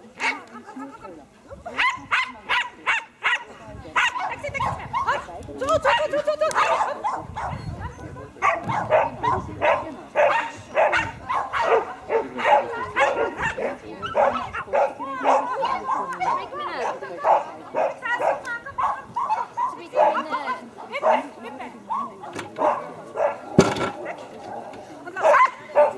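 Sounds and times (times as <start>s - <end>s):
dog barking: 1.7s - 5.2s, 5.9s - 7.7s, 8.4s - 21.4s, 22.6s - 24.2s, 25.2s - 25.9s.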